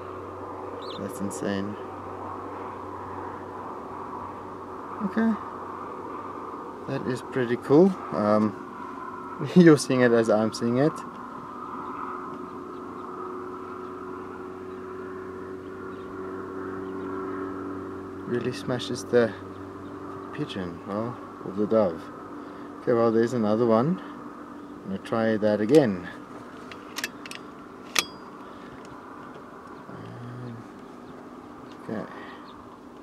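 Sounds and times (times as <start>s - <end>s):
air rifle lever metallic clicks: 26.6s - 29.0s.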